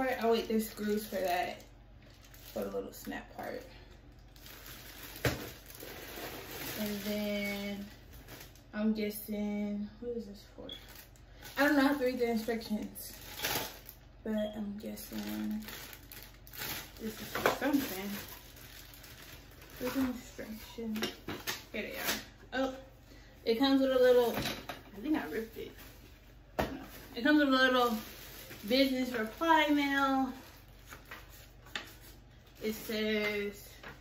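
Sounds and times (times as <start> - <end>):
woman speaking: 0.0 - 1.7, 2.5 - 3.9, 6.7 - 8.0, 8.7 - 10.9, 11.6 - 13.2, 14.2 - 15.8, 17.0 - 18.4, 19.8 - 25.9, 27.1 - 30.4, 32.6 - 33.9
plastic packaging rustling: 0.0 - 8.7, 10.8 - 14.1, 14.8 - 22.3, 25.0 - 34.0.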